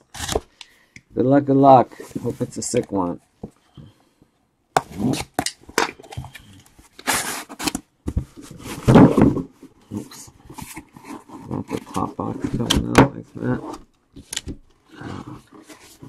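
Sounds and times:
cardboard flaps rustling: 6.0s - 9.7s
box scraping and knocking: 7.0s - 13.9s.

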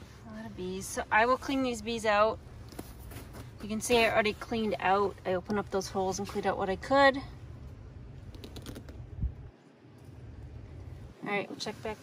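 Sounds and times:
wind buffeting microphone: 9.0s - 9.5s.

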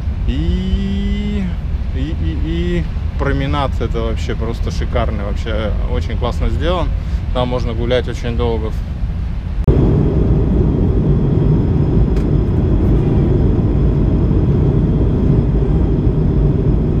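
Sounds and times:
wind buffeting microphone: 8.6s - 17.0s.

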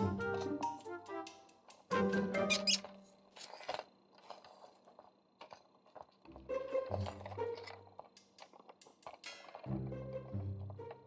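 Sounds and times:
background music chord: 0.0s - 2.5s
plastic parts clicking and squeaking: 2.4s - 11.0s.

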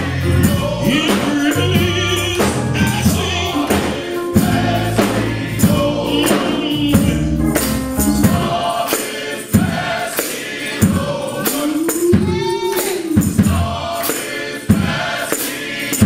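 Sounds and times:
keyboard accompaniment: 0.0s - 14.4s
men's choir singing gospel: 0.0s - 16.0s
steady percussion beat: 0.0s - 16.0s.

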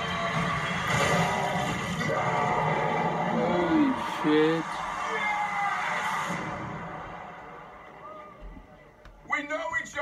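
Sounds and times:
arena crowd roaring: 0.0s - 8.4s.

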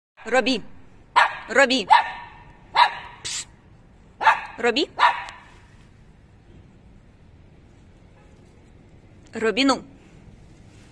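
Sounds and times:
puppy barking: 1.1s - 3.4s, 4.2s - 5.6s
brief hissing noise: 3.2s - 3.6s.

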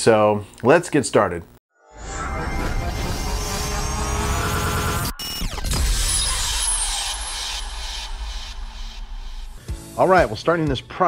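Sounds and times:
rising whine: 1.9s - 9.7s
falling sweep: 2.0s - 9.6s
low rumble: 2.0s - 9.7s.

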